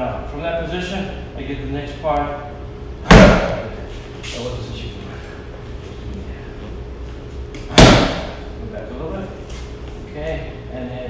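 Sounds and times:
punch smacking a strike shield: 3.1 - 3.6, 7.7 - 8.4.

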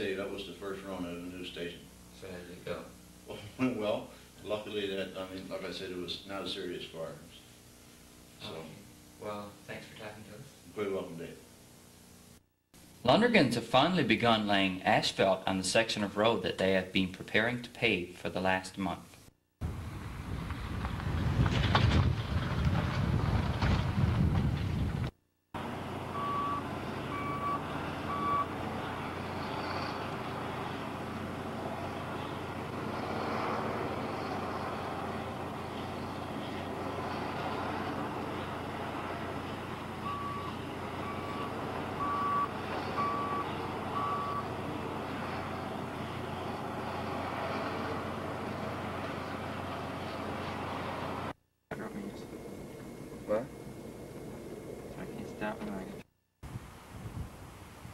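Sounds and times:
heavy construction machinery running: 25.6 - 52.7
back-up alarm beeping: 26.1 - 28.5, 40.0 - 44.5.

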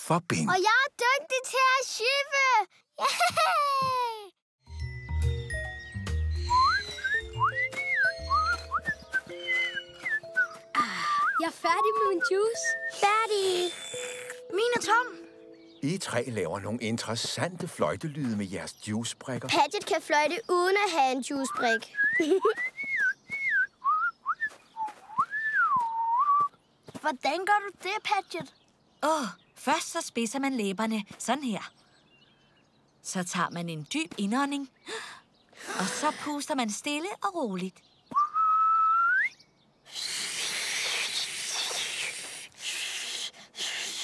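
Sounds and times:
person whistling a tune: 6.4 - 13.0, 21.5 - 26.5, 38.2 - 39.4
breathy blowing: 39.9 - 44.0.

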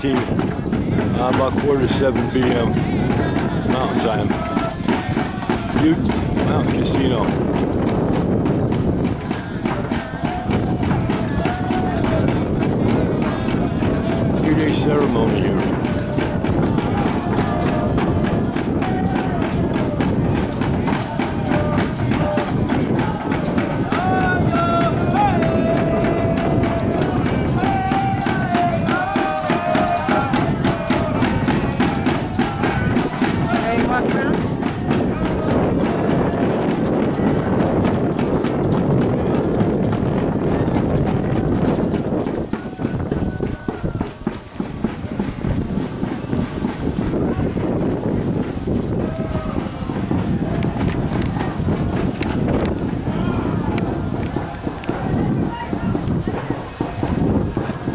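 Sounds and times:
large drum steady beat: 0.0 - 57.9.

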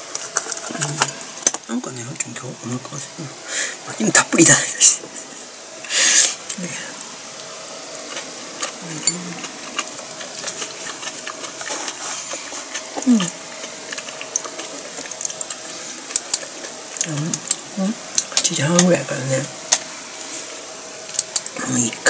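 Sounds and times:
person chewing with mouth smacks: 7.4 - 18.4, 20.4 - 21.6
closed-mouth murmurs: 8.6 - 14.5.

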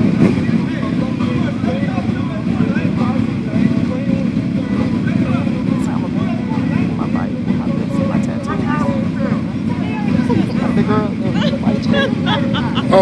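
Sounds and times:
motorcycles idling: 0.0 - 13.0
people talking: 0.0 - 13.0.

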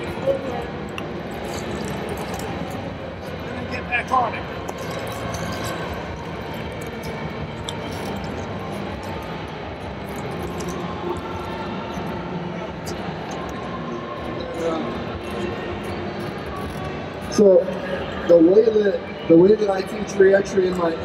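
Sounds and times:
background music: 0.0 - 21.0
indistinct crowd voices: 0.0 - 21.0.

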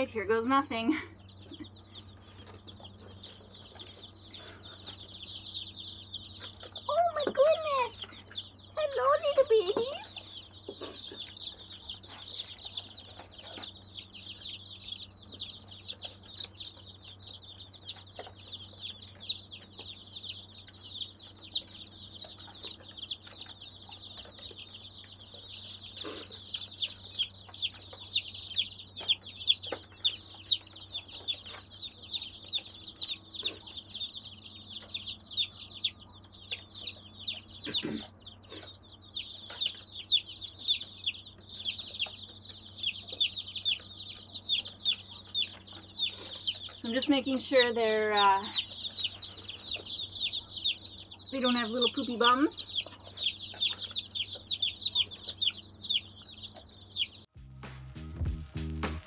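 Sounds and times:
baby chicks peeping: 0.0 - 59.0.

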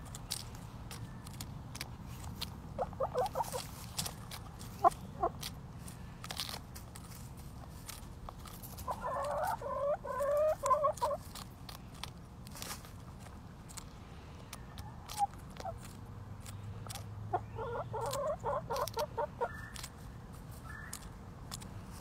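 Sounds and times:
beaks pecking lettuce clicks: 0.0 - 22.0
hens clucking: 2.7 - 5.6, 8.6 - 11.4, 14.5 - 19.9.

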